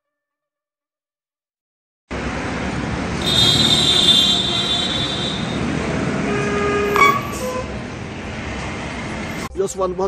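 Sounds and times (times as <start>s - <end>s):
outdoor background noise: 2.1s - 9.5s
short horn-like tone: 6.3s - 7.7s
high-pitched squeal: 6.9s - 7.7s.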